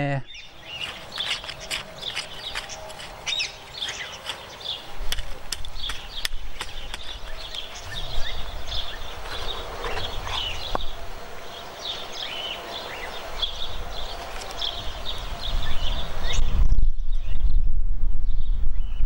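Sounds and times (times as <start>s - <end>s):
small birds chirping: 0.0s - 17.5s
hand trowel clicking in soil: 0.8s - 4.5s, 5.1s - 7.6s.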